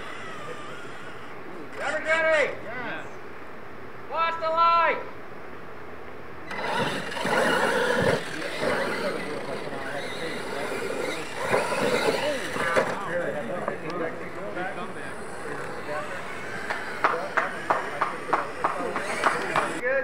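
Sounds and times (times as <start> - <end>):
toy truck electric motors whining: 0.0 - 2.1, 6.5 - 19.8
voices of people: 6.5 - 20.0.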